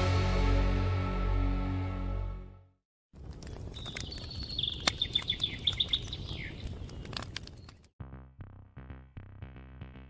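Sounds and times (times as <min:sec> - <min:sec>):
small birds chirping: 0:03.4 - 0:07.9.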